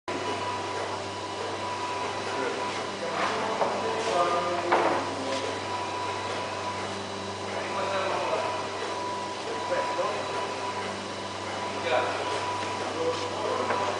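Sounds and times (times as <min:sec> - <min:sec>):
machine hum with high whine: 0:00.1 - 0:13.9
people talking: 0:02.3 - 0:05.6, 0:07.5 - 0:08.9, 0:09.5 - 0:10.4, 0:11.8 - 0:13.9.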